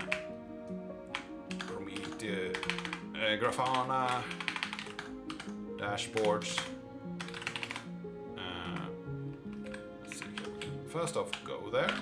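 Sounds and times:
computer keyboard typing: 0.0 - 0.3, 1.0 - 7.9, 8.7 - 12.0
background music with held notes: 0.0 - 12.0.

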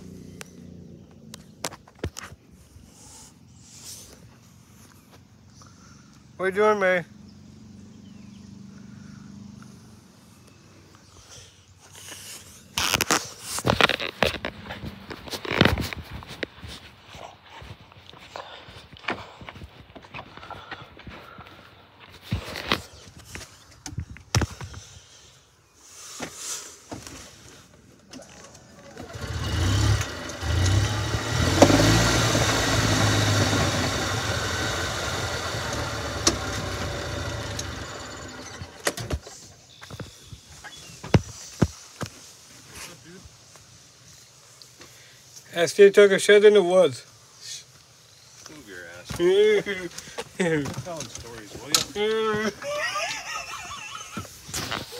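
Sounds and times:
golf cart running hum: 28.4 - 39.3.

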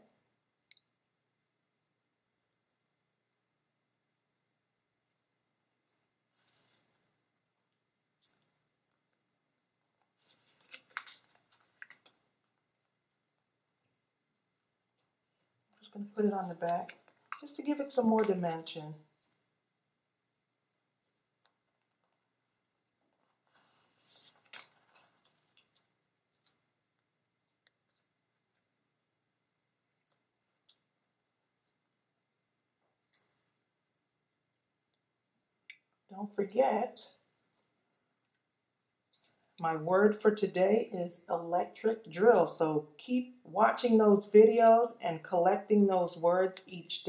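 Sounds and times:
adhesive backing crinkling: 9.8 - 13.4, 21.5 - 26.6
paper rustling and crackling: 10.0 - 12.3, 23.0 - 26.6.

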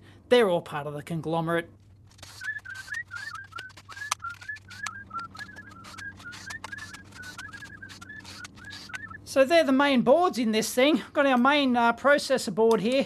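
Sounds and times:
plastic connectors clicking: 2.2 - 9.2
short high chirps: 2.3 - 9.2.

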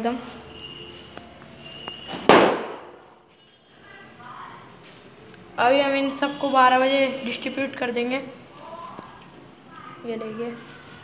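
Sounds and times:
sharp bang: 2.1 - 3.1.

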